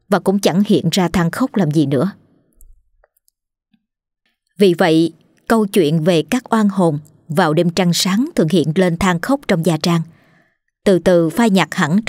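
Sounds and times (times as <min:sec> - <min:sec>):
woman narrating: 0:00.0 - 0:02.3, 0:04.6 - 0:10.3, 0:10.9 - 0:12.0.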